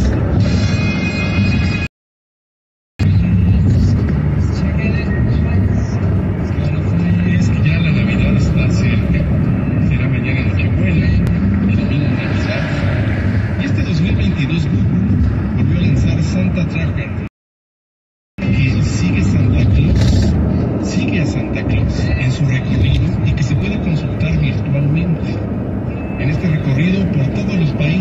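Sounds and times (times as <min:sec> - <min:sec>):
road and tyre noise in car: 0:00.0 - 0:01.9, 0:03.0 - 0:17.3, 0:18.4 - 0:28.0
muffled voices: 0:03.0 - 0:17.3, 0:18.4 - 0:28.0.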